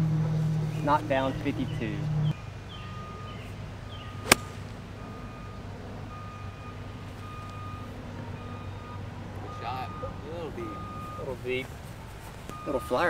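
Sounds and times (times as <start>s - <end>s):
golf club striking ball: 4.2s - 4.8s.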